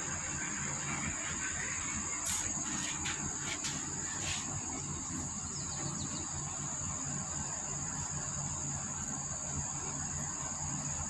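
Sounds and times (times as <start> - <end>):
insect trilling: 0.0 - 7.9.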